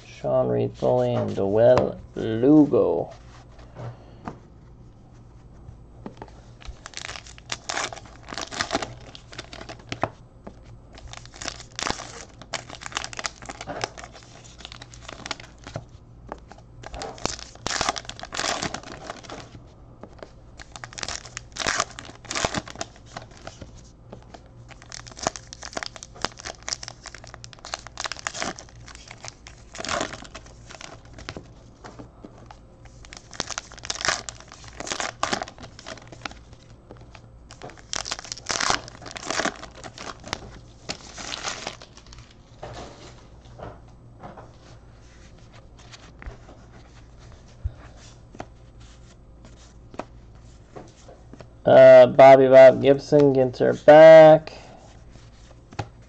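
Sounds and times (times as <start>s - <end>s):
card pack wrappers tearing and crinkling: 6.6s - 10.1s, 10.9s - 15.8s, 16.4s - 19.6s, 20.2s - 42.5s.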